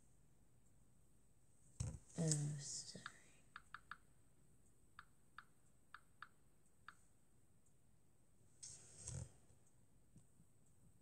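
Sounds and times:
taps on a touchscreen: 0:03.0 - 0:04.1.

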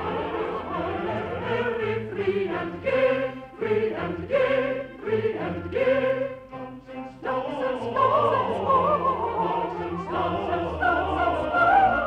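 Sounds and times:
mixed choir singing: 0:00.0 - 0:12.0
orchestral accompaniment: 0:00.0 - 0:12.0.

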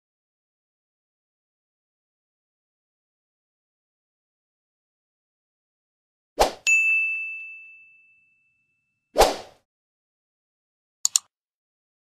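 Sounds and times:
quick swish: 0:06.4 - 0:06.6, 0:09.2 - 0:09.6
bright bell-like ding: 0:06.7 - 0:08.9.

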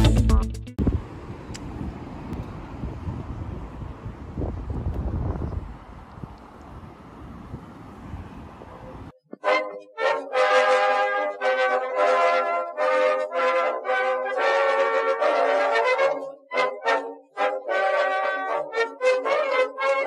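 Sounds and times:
low outdoor noise: 0:00.8 - 0:09.2
brass music: 0:09.4 - 0:20.0.

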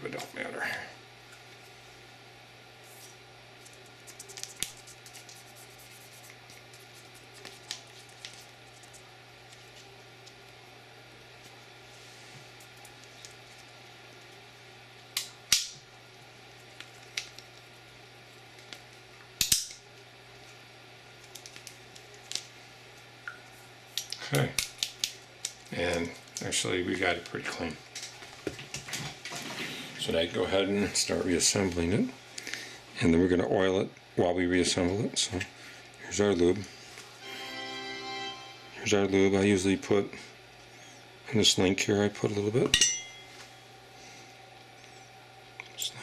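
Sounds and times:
steady low hum: 0:00.0 - 0:46.0.

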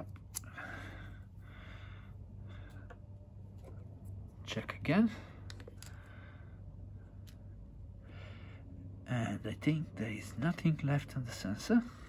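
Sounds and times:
steady low hum: 0:00.0 - 0:12.0
soft breaths: 0:00.4 - 0:03.4.

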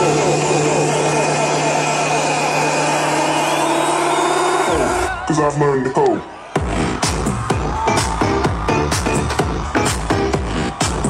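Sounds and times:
techno over a sound system: 0:00.0 - 0:11.0.

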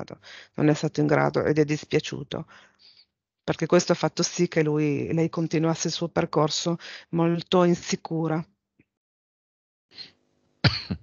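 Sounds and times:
sharp cough: 0:10.6 - 0:11.0.

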